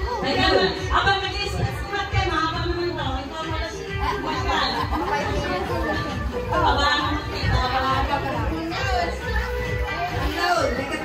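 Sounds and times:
background music: 0.0s - 11.0s
people chattering: 0.0s - 11.0s.

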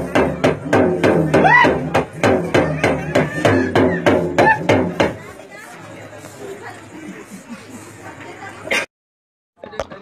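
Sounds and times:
crowd murmuring: 0.0s - 8.9s.

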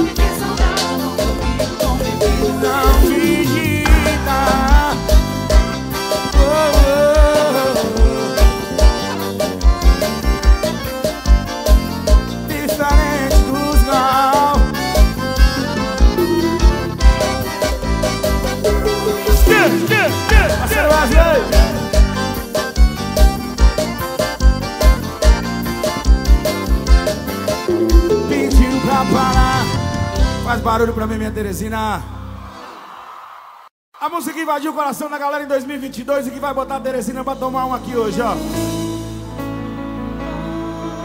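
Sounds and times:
accordion melody: 0.0s - 30.9s, 38.4s - 41.0s
deep kick drum beat: 3.9s - 5.7s, 27.7s - 29.6s.

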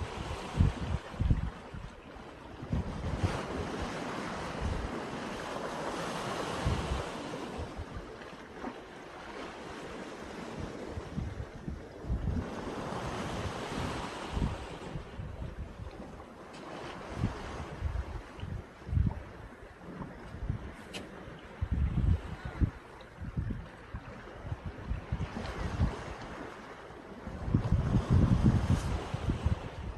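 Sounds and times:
wind buffeting microphone: 0.0s - 8.7s, 9.6s - 29.9s
small waves washing ashore: 0.0s - 29.9s.

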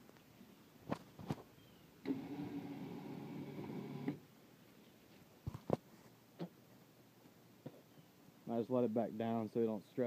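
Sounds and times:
electric winch motor running: 2.0s - 4.2s.

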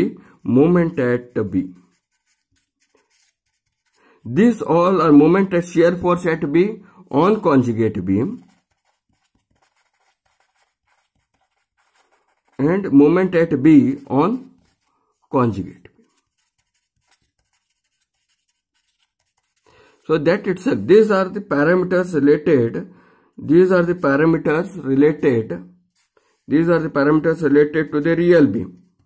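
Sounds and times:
pen scratching while writing: 0.6s - 4.0s, 7.2s - 12.8s, 13.8s - 19.7s, 25.9s - 26.5s.

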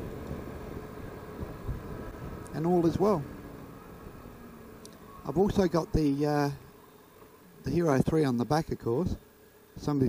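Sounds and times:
motorcycle engine and wind rumble: 0.0s - 6.8s.

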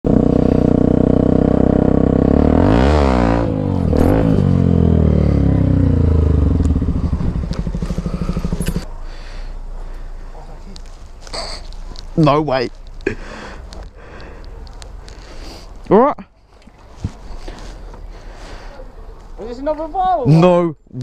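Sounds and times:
dirt bike engine revving: 0.1s - 8.9s.

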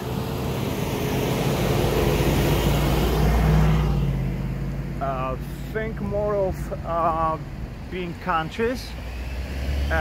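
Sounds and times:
vehicle driving past: 0.0s - 5.0s, 8.9s - 10.0s.

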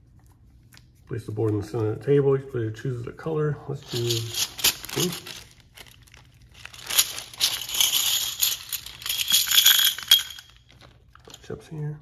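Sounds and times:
plastic bag crinkling: 3.8s - 11.4s
plastic chips clattering: 3.8s - 11.4s.

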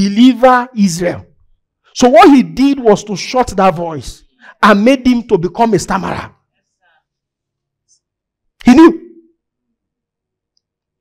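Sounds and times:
man speaking: 0.0s - 1.3s, 1.9s - 6.4s, 8.6s - 9.2s.

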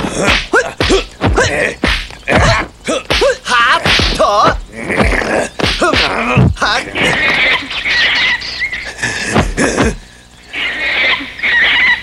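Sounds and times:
shrill warbling squealing cries: 6.6s - 9.0s, 10.4s - 12.0s.

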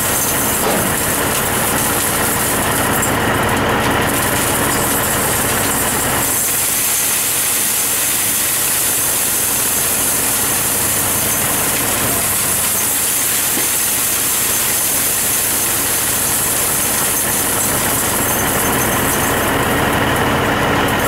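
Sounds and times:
diesel engine running: 0.0s - 21.0s
rock salt pouring with hiss: 4.1s - 18.6s.

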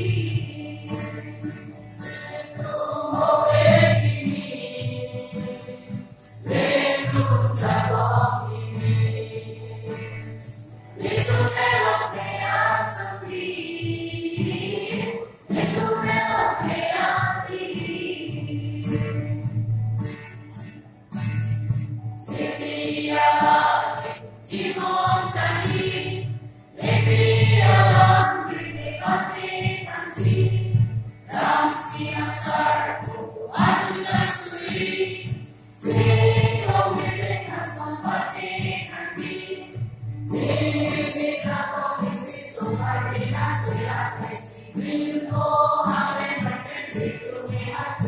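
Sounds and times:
women's group singing: 0.0s - 19.7s, 22.3s - 48.0s
acoustic guitar accompaniment: 0.0s - 48.0s.

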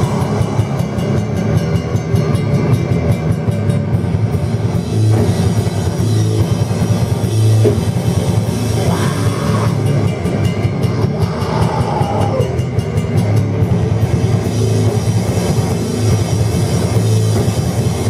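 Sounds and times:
bass guitar: 0.0s - 18.0s
distorted guitars: 0.0s - 18.0s
drums: 0.0s - 18.0s.

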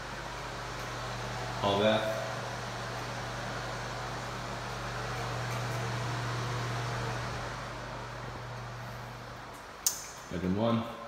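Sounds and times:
ventilation fan humming: 0.0s - 11.0s.

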